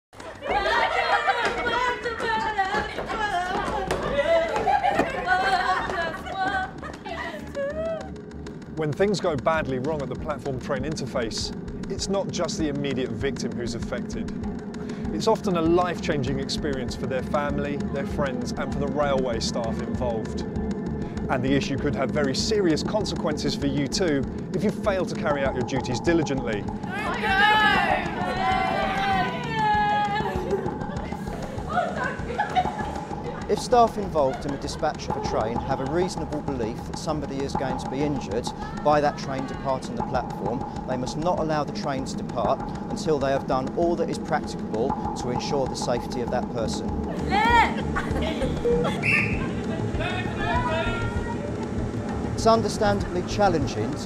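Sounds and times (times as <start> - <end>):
women whooping and shrieking: 0.3 - 8.2, 26.9 - 33.4, 47.1 - 51.5
women chattering and calling out: 0.4 - 8.2
low rumble: 3.3 - 54.0.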